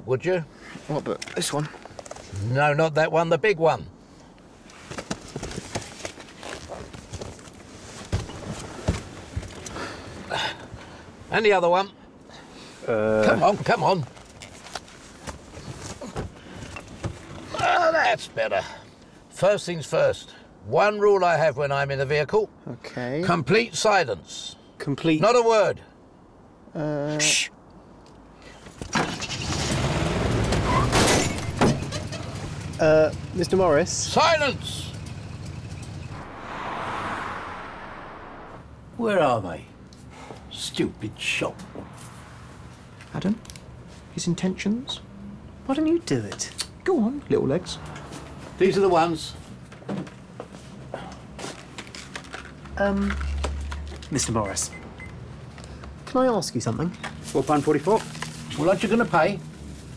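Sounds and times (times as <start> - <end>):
books and papers rustling: 4.7 - 9.6, 57.0 - 59.9
car engine revving: 34.8 - 38.9.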